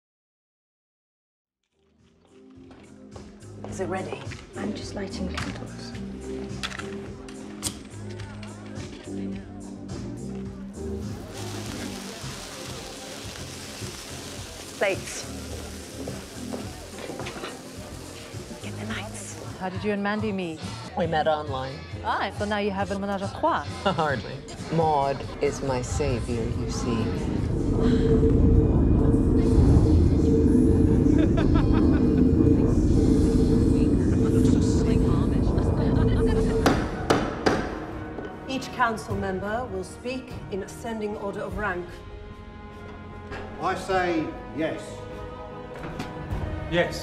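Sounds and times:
low background music: 0:01.8 - 0:47.0
steady hiss: 0:11.0 - 0:19.6
low rumbling drone: 0:25.7 - 0:37.2.

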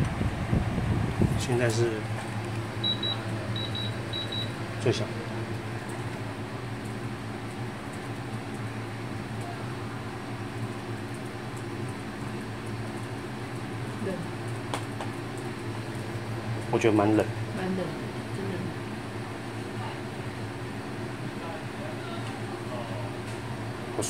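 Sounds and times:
air conditioner humming: 0:00.0 - 0:24.0.

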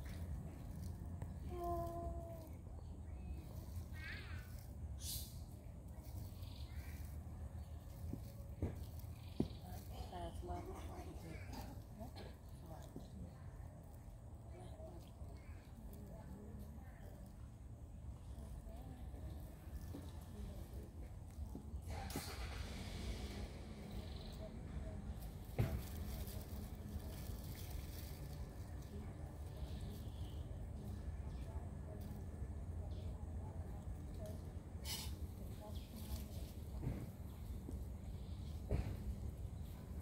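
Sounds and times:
vehicle passing with rumble: 0:21.8 - 0:29.4
brief hiss: 0:22.1 - 0:23.5.

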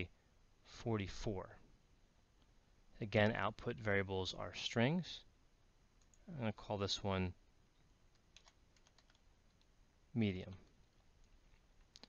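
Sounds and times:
soft keyboard typing: 0:06.0 - 0:06.3, 0:08.1 - 0:09.8, 0:10.4 - 0:12.0.

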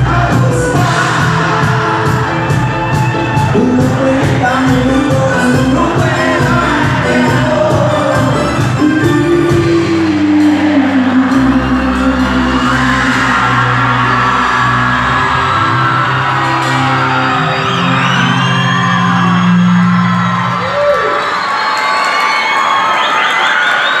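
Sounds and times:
live band holding notes: 0:00.0 - 0:23.9
crowd whooping and cheering: 0:00.0 - 0:24.0.

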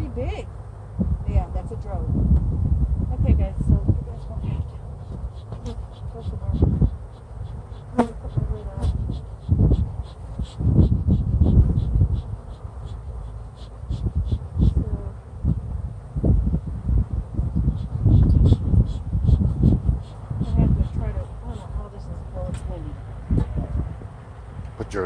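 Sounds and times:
wind rumble on microphone: 0:00.0 - 0:25.0
bee buzzing close past microphone: 0:03.2 - 0:15.6, 0:17.4 - 0:22.8
honeybees buzzing: 0:03.6 - 0:15.0.

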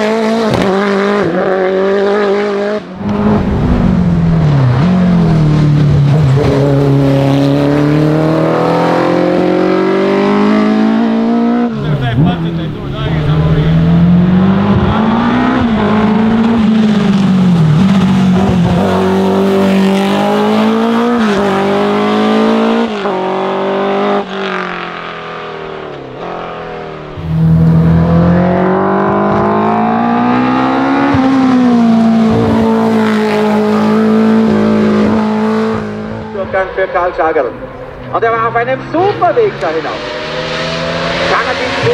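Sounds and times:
race car engine revving hard: 0:00.0 - 0:36.6, 0:38.6 - 0:41.9.

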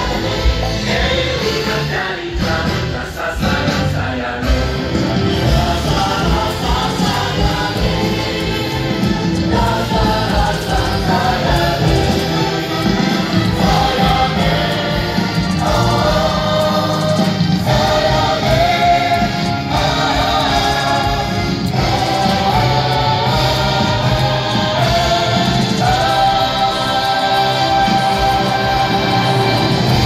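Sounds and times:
choir singing held chords: 0:00.0 - 0:30.0
musical backing: 0:00.0 - 0:30.0.

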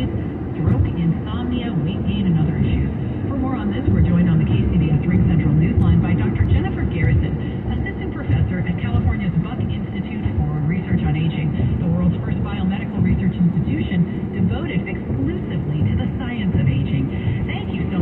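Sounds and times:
car road and engine noise: 0:00.0 - 0:18.0.

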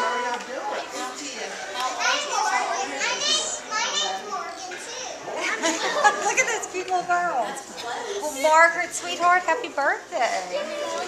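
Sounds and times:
young girls chattering: 0:00.0 - 0:09.2, 0:10.2 - 0:11.0.

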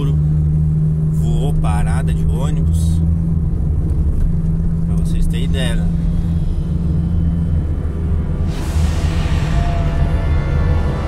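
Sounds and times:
car engine and road rumble: 0:00.0 - 0:11.0
steady hum: 0:03.0 - 0:11.0.

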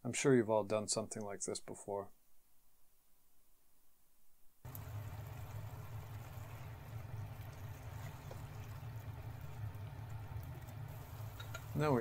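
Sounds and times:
bamboo shoots sizzling in oil: 0:04.6 - 0:12.0
oil popping: 0:04.7 - 0:12.0.

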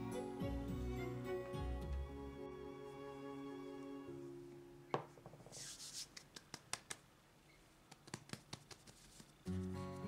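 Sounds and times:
background music chord: 0:00.0 - 0:04.9
high rubbing hiss: 0:05.4 - 0:07.0.

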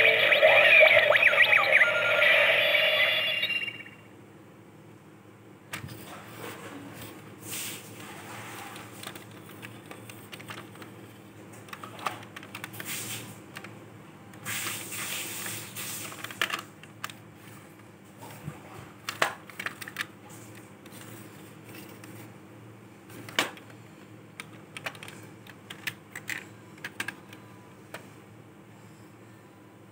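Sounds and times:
plastic toy clicking and knocking: 0:24.4 - 0:27.4.

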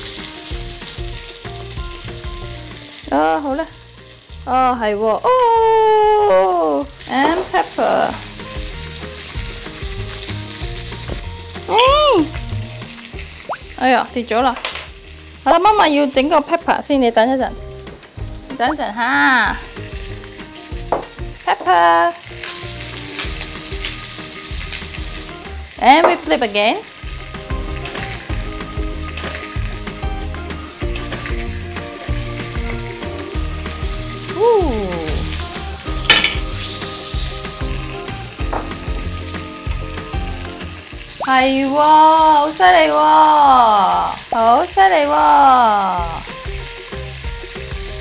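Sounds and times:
background music with bass line: 0:00.0 - 0:04.6, 0:27.1 - 0:41.1, 0:46.0 - 0:48.0
fish sizzling in a pan: 0:00.0 - 0:48.0
person crying out: 0:11.7 - 0:12.3, 0:34.4 - 0:35.2.

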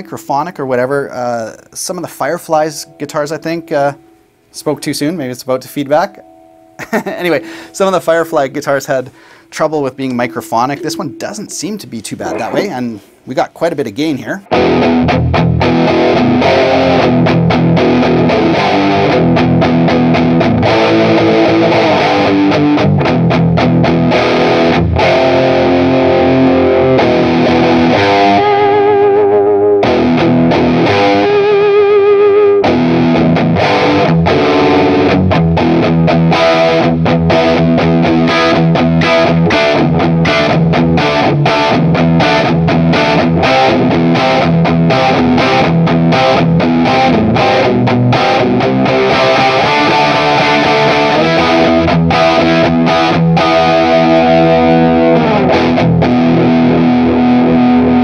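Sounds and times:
distorted electric guitar riffing: 0:06.2 - 0:13.3, 0:14.4 - 0:58.0.

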